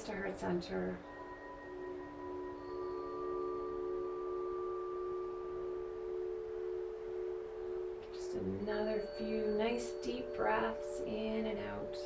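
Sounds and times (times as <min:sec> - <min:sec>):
calm music of held tones: 0:00.0 - 0:12.0.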